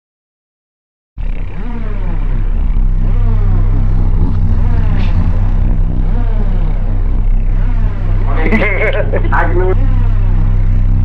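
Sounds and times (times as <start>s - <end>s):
low mechanical hum: 1.2s - 11.0s.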